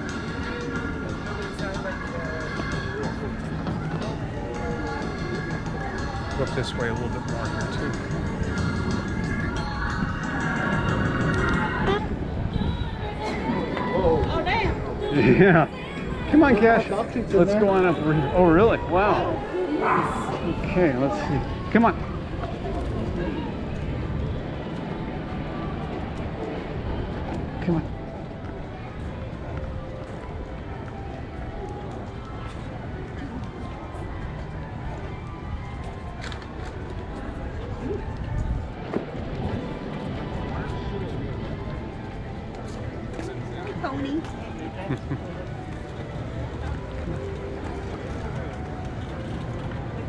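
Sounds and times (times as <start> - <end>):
background music: 0.0 - 50.0
passers-by talking: 0.0 - 50.0.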